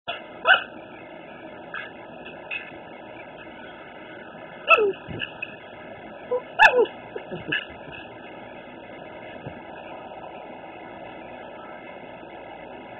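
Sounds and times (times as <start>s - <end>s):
dog barking: 0.1s - 0.8s, 6.6s - 6.9s.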